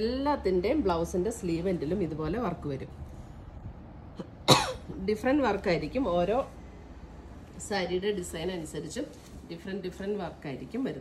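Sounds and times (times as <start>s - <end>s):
person coughing: 4.2s - 4.9s.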